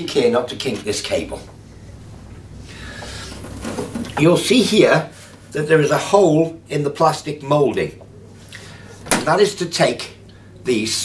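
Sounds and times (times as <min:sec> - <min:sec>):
handle rubbing against plastic: 0:03.0 - 0:04.3.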